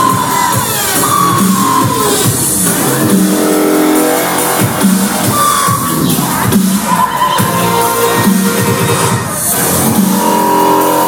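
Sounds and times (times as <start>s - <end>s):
loud electronic dance music: 0.0s - 11.0s
rising synth sweep: 0.8s - 5.4s.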